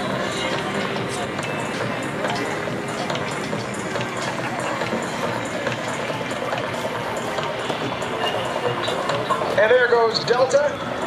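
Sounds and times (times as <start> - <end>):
jet engines at takeoff power: 0.0 - 11.0.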